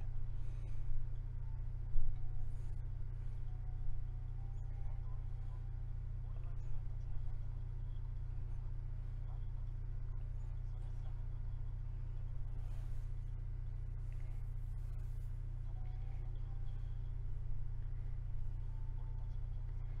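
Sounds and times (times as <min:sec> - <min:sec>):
faint indistinct speech: 0:00.0 - 0:20.0
low hum: 0:00.0 - 0:20.0.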